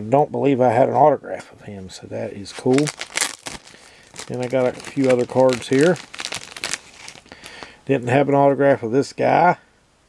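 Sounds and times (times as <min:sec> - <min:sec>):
cards and wrapping crinkling: 0:02.4 - 0:07.8.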